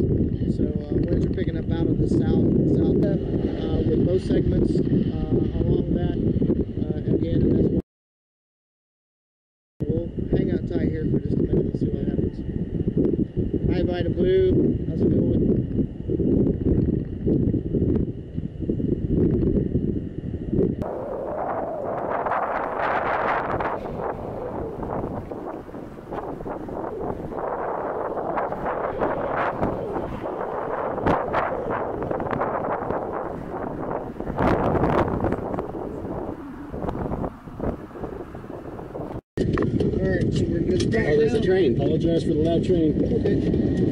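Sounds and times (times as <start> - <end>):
wind buffeting microphone: 0.0 - 7.8, 9.8 - 43.9.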